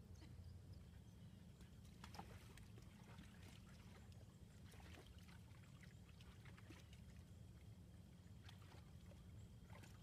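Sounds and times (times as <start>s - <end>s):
water sloshing in wading pool: 1.5s - 10.0s.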